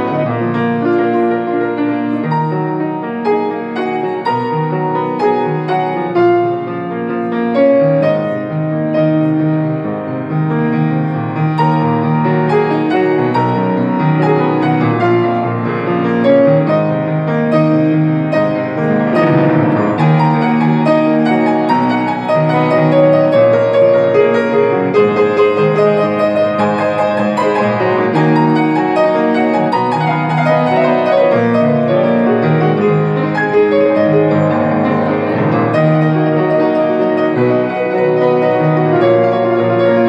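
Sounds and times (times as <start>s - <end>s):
grand piano playing: 0.0s - 40.0s.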